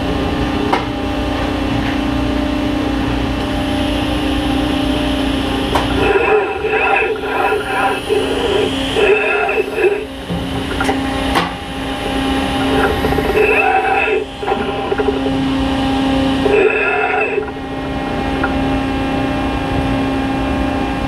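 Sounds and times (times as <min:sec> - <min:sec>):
machine hum: 0:00.0 - 0:21.0
indistinct voice: 0:05.8 - 0:10.2, 0:12.6 - 0:15.3, 0:16.4 - 0:17.5.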